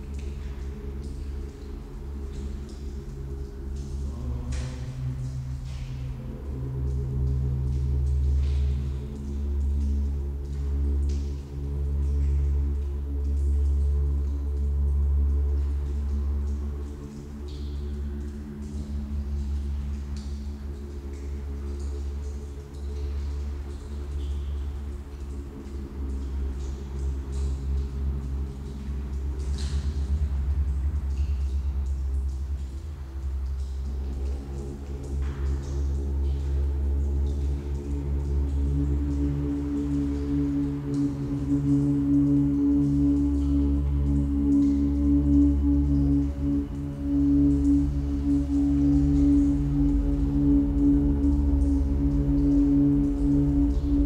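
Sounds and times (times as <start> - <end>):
low pulsing tone: 0.0 - 23.7, 24.6 - 54.0
deep hum: 0.0 - 54.0
deep throbbing low drone: 0.0 - 54.0.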